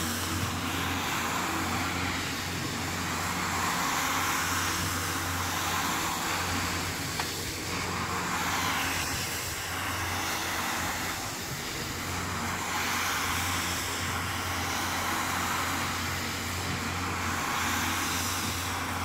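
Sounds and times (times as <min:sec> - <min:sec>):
brush scrubbing rug: 0:00.0 - 0:19.0
floor scrubber motor hum: 0:00.0 - 0:19.0.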